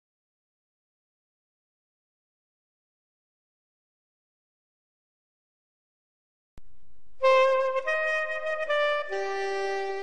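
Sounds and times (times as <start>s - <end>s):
saxophone slow melody: 7.2s - 10.0s.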